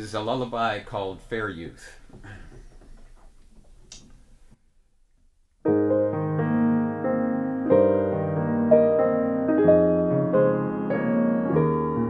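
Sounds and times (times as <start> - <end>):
faint room noise: 0.0 - 7.8
grand piano lullaby: 5.7 - 12.0.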